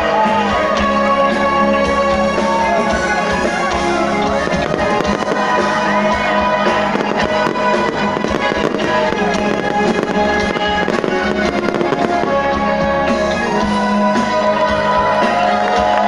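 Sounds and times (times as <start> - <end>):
loud music: 0.0 - 16.0
fireworks cracking and banging: 3.1 - 13.6.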